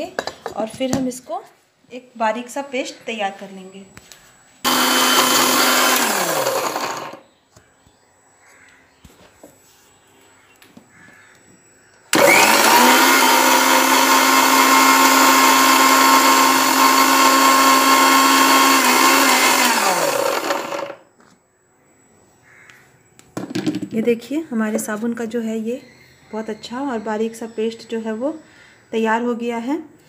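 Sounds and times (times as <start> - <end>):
mixer grinder motor running: 4.7 - 7.2, 12.1 - 21.0.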